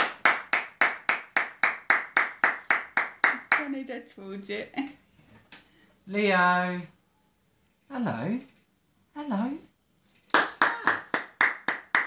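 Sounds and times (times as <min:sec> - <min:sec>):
hands clapping steadily: 0:00.0 - 0:03.7, 0:10.3 - 0:12.0.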